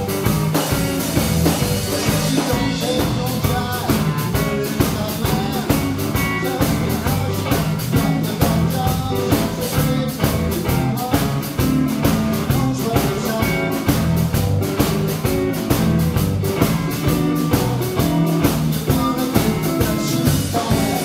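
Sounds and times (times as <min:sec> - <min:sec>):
bass guitar: 0:00.0 - 0:21.0
drum kit: 0:00.0 - 0:21.0
electric guitar: 0:00.0 - 0:21.0.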